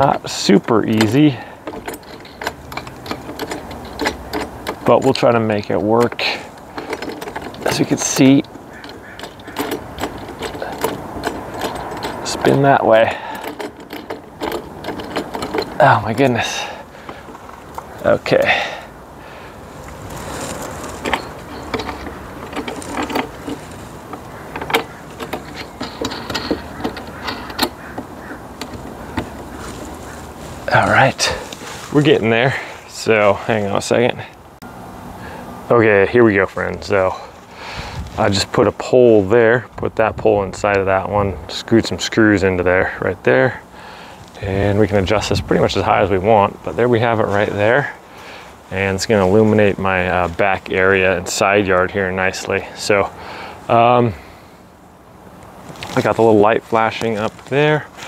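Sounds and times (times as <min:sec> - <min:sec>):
metal hardware clicks and knocks: 0:00.0 - 0:32.7.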